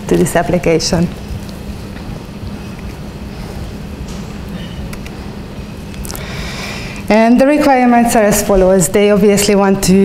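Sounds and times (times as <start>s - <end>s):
constant hum: 0.0s - 10.0s
low room rumble: 0.0s - 10.0s.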